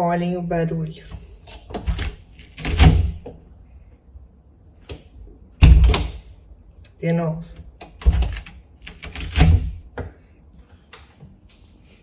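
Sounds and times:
door opening and shutting: 1.6 - 3.4, 5.6 - 6.2, 7.8 - 9.8
loud door noises: 1.7 - 3.4, 5.6 - 6.3, 7.9 - 10.0.

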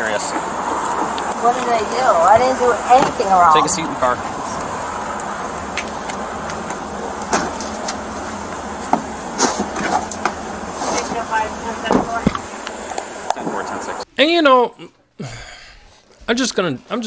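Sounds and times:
steady hiss: 0.0 - 14.1.

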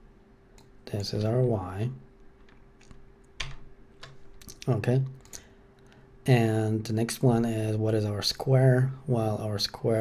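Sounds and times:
computer keyboard keystrokes: 2.4 - 4.2.

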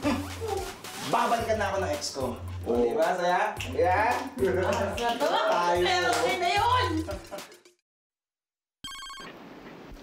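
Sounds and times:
phone electronic ringtone: 8.8 - 9.3.

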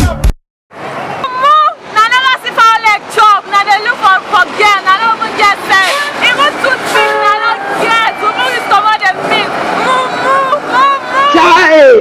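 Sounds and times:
woman talking excitedly: 1.2 - 11.6
vehicle horn toot: 5.8 - 9.2.

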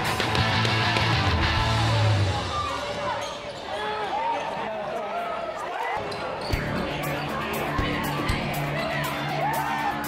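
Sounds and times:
sneakers squeaking on court: 3.2 - 3.8, 6.0 - 6.8.

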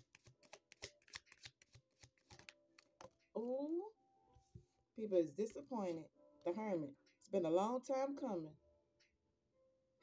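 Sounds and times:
cards being shuffled: 0.0 - 3.3.

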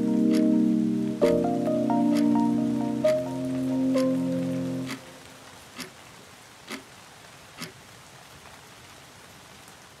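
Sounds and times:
faint hiss-like background noise: 0.0 - 10.0.

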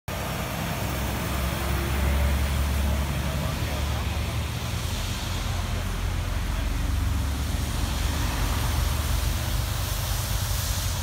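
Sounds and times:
low outdoor rumble: 0.1 - 11.0
faint voices: 1.6 - 8.2.

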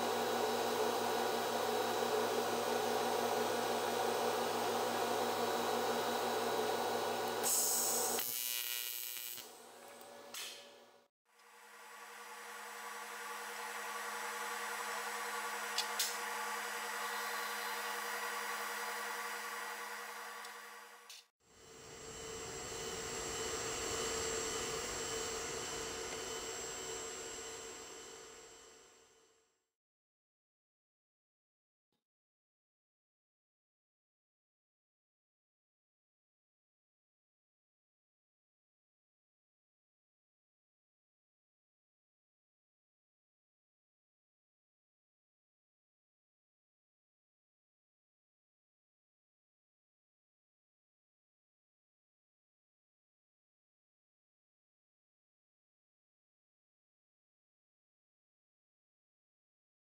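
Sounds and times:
welding arc buzzing: 7.3 - 9.8
hiss: 7.4 - 8.3.

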